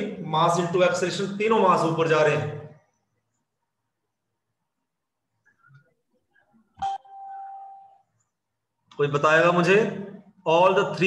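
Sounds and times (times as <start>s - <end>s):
single ding tone: 6.8s - 7.8s.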